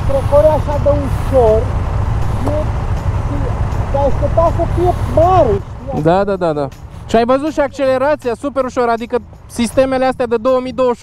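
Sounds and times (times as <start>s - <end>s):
motorcycle engine idling: 0.0s - 10.9s
person speaking: 2.3s - 8.7s.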